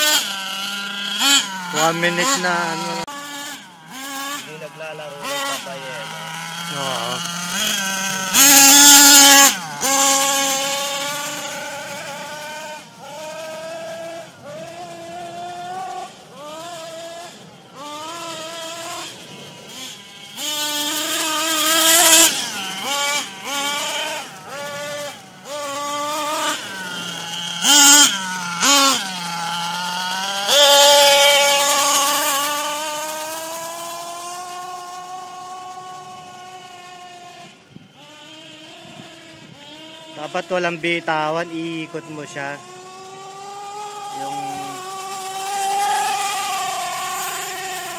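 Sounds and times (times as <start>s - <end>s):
rc car engine revving: 0.0s - 47.9s.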